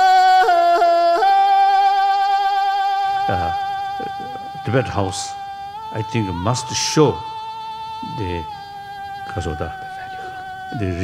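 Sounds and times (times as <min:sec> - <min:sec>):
person singing a high note: 0:00.0 - 0:11.0.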